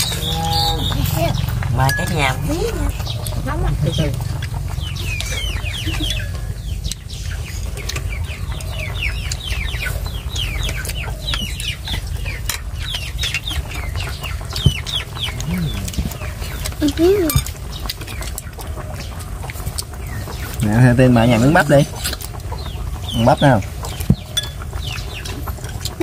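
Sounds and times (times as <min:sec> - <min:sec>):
chickens chirping: 0:00.0 - 0:26.0
steady low rumble: 0:00.0 - 0:26.0.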